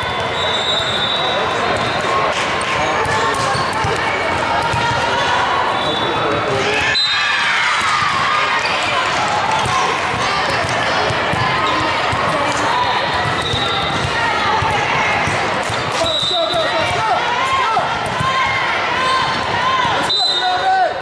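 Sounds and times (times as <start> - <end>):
chatter of many voices: 0.0 - 21.0
volleyballs struck and bouncing: 1.6 - 5.2, 7.7 - 17.2, 17.8 - 20.0.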